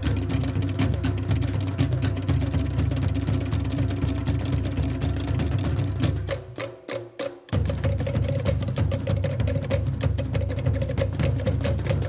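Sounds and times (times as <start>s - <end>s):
slit drums and bass drums playing: 0.0s - 12.0s.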